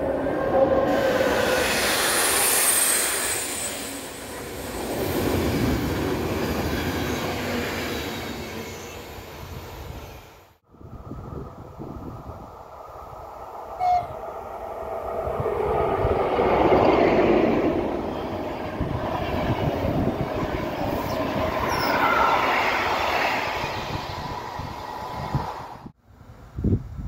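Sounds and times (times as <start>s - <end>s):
train passing at speed: 0.0s - 26.6s
train horn toot: 13.8s - 14.2s.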